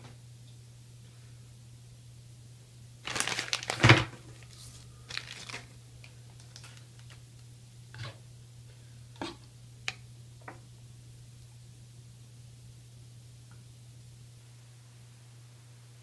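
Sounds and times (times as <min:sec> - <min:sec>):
plastic bag rustling and crinkling: 0:03.0 - 0:07.2.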